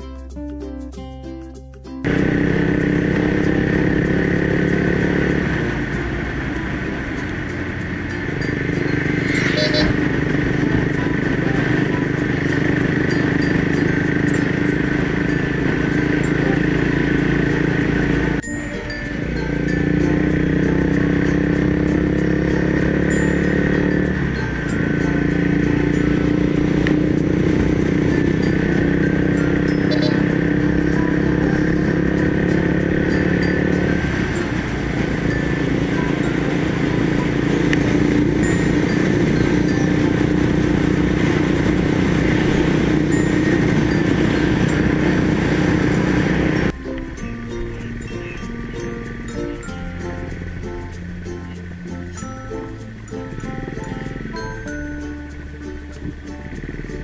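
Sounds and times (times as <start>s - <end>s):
motorcycle engine running: 2.0s - 57.0s.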